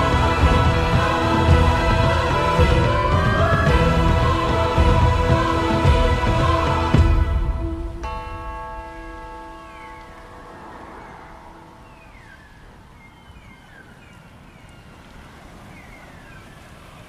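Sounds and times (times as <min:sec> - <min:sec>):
held music notes: 0:00.0 - 0:12.4
wind and road noise: 0:09.2 - 0:17.0
bird chirps: 0:09.5 - 0:15.0.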